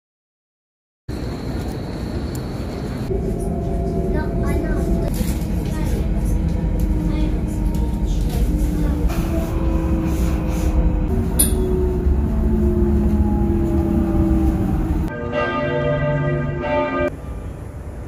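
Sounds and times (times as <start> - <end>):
train motor humming: 1.1 - 15.1
train rumbling: 1.1 - 18.0
voices: 2.3 - 11.8.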